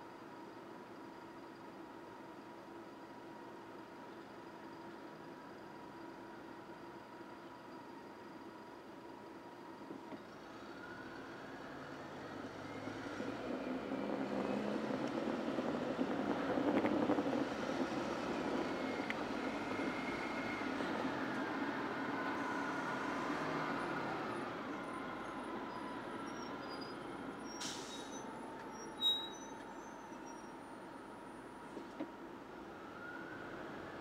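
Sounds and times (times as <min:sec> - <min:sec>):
bus running alongside: 0:00.0 - 0:34.0
car engine accelerating: 0:10.8 - 0:26.2.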